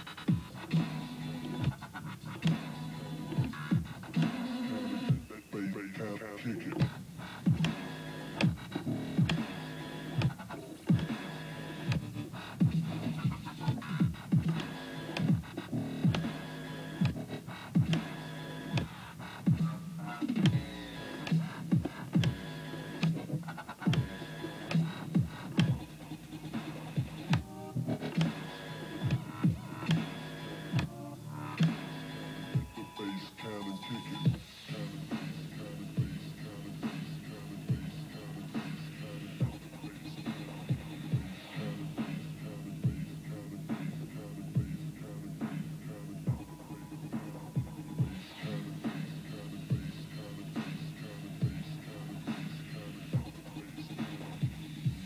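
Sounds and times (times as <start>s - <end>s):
dubstep music with strong bass: 0.0s - 55.0s.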